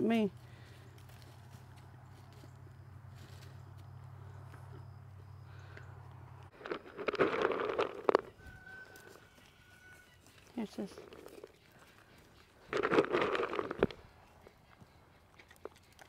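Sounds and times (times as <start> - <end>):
faint low hum: 0.0 - 6.9.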